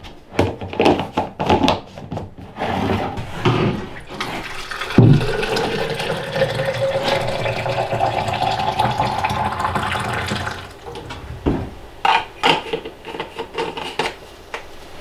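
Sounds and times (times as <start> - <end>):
water filling a bottle: 4.1 - 10.9
handling knocks: 10.9 - 11.9.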